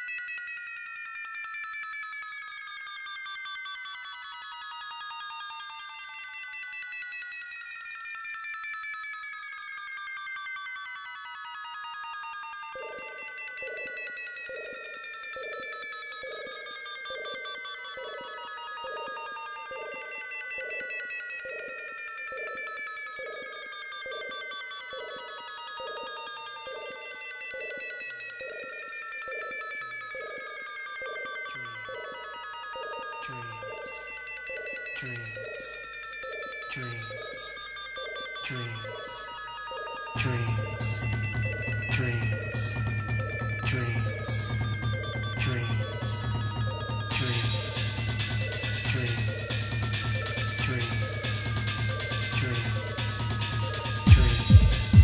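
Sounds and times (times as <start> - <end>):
synthesizer tones gliding downward: 18.8 - 55.0
pulsing synth note: 33.4 - 55.0.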